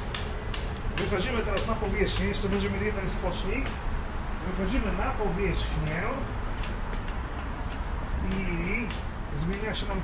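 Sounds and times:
footsteps on steps: 0.0s - 3.9s, 5.6s - 10.0s
white cane tapping: 0.0s - 3.9s, 5.7s - 10.0s
low rumble of city traffic: 0.0s - 10.0s.

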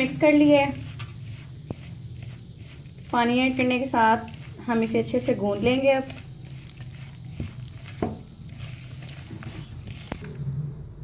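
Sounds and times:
hand rubbing flour in a bowl: 0.0s - 10.3s
steady low hum: 0.0s - 11.0s.

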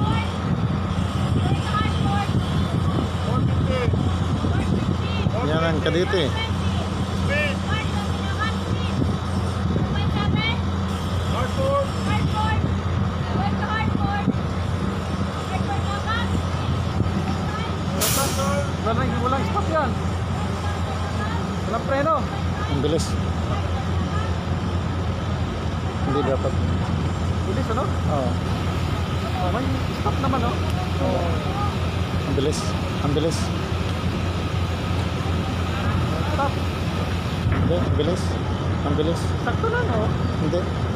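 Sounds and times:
distant voices: 0.0s - 40.9s
ferry engines droning: 0.0s - 40.9s
short sharp hiss: 18.0s - 18.7s.

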